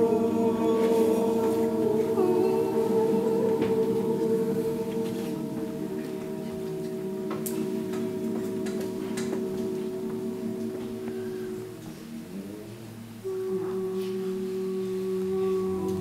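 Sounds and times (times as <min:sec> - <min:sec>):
group of voices holding notes: 0:00.0 - 0:16.0.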